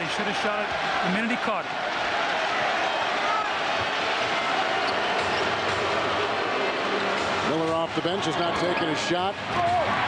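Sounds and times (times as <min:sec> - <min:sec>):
crowd voices din: 0:00.0 - 0:10.0.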